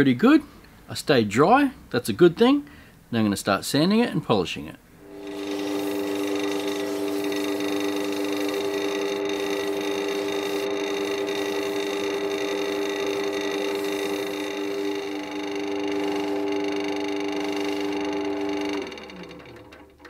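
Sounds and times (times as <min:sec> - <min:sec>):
wood lathe motor humming: 0:05.0 - 0:20.0
paper towel polishing: 0:05.1 - 0:18.7
sandpaper sanding spinning piece: 0:05.1 - 0:19.1.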